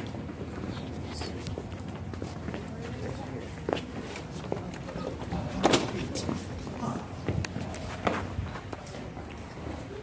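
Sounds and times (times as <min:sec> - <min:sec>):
footsteps on concrete: 0:00.0 - 0:10.0.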